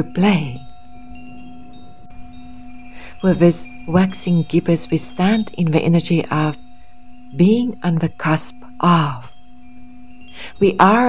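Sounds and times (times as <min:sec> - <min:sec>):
soft chime tones: 0:00.0 - 0:11.0.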